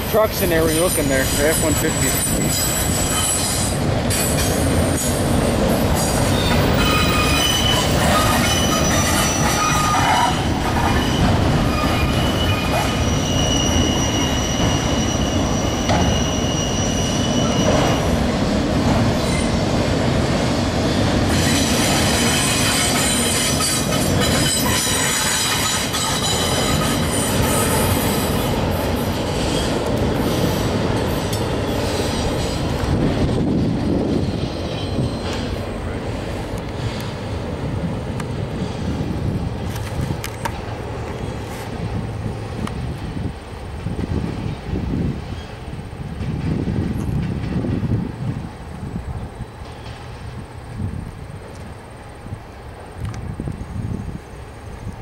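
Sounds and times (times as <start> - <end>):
train wheels rumbling on rail: 0.0 - 55.0
high-pitched wheel squeal: 0.6 - 5.2, 6.2 - 18.1, 21.3 - 28.3.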